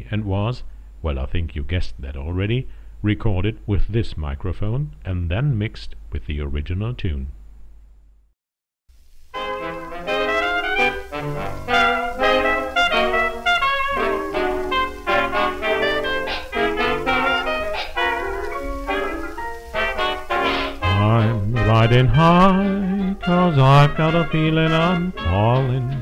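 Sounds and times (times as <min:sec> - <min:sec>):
band music instrumental: 0:09.4 - 0:26.0.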